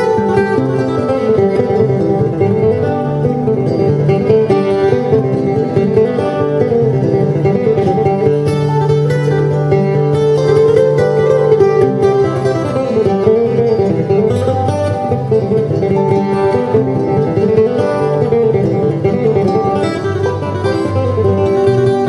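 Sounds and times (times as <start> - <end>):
acoustic guitar picking a tune: 0.0 - 22.0.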